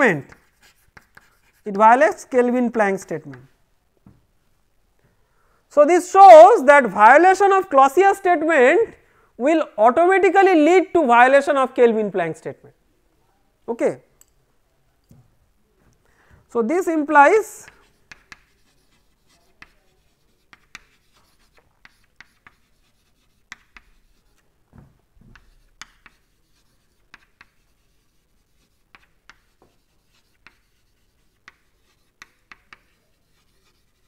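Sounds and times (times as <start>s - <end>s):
chalk writing on chalkboard: 0.0s - 2.0s, 17.6s - 24.4s, 25.2s - 34.0s.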